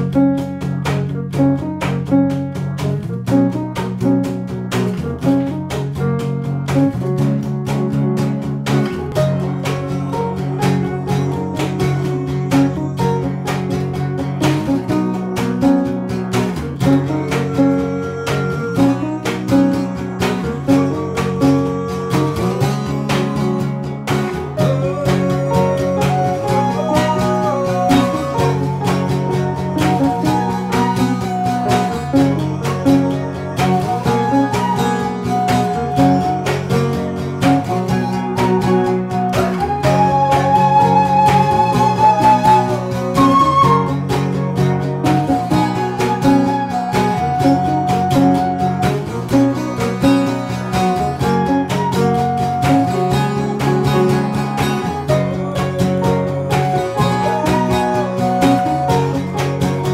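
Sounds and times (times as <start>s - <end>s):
guitar strummed and picked: 0.0s - 59.9s
higher melody line: 0.0s - 59.9s
low keyboard chords: 0.0s - 59.9s.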